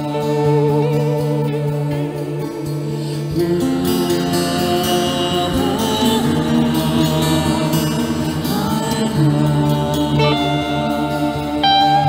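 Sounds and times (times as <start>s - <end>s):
ambient guitar music: 0.0s - 12.0s.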